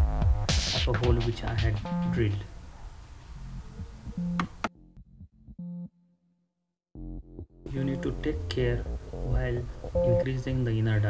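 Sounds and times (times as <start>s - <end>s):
sustained synthesizer notes: 6.9s - 10.4s.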